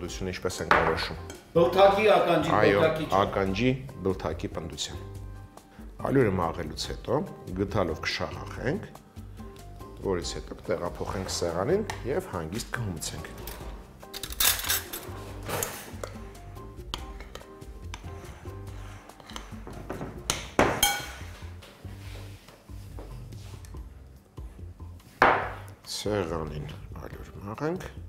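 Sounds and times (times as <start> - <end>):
background music: 0.0 - 28.0
metal spoon clinking glass bowl: 14.1 - 15.1, 20.8 - 21.3.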